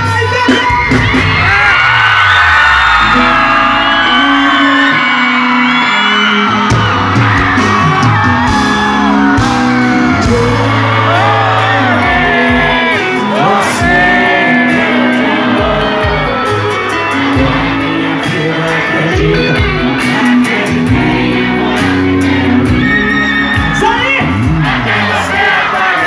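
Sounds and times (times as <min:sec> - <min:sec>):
crowd whooping and shouting: 0:00.0 - 0:26.0
loud live band music: 0:00.0 - 0:26.0.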